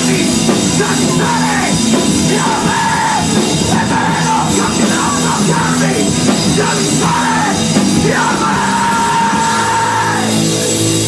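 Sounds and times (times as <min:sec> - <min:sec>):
punk band playing live: 0:00.0 - 0:11.0
person yelling: 0:00.9 - 0:10.3.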